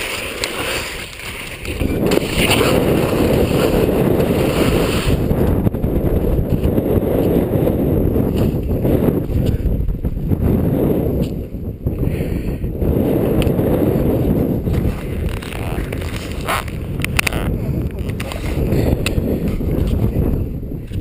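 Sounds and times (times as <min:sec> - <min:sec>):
skis scraping over snow: 0:00.0 - 0:05.3
wind noise on microphone: 0:00.0 - 0:21.0.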